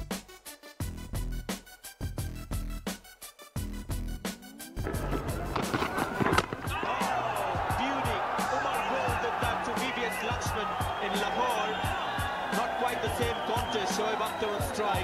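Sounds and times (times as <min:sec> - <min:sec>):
background music with steady beat: 0:00.0 - 0:15.0
ball hitting stumps knock: 0:04.9 - 0:06.8
stadium crowd cheering: 0:04.9 - 0:15.0.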